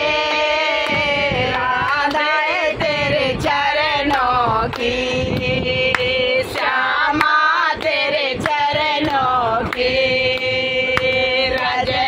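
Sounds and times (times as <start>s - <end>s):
women singing unaccompanied: 0.0s - 12.0s
hand claps: 0.8s - 2.4s, 4.0s - 12.0s.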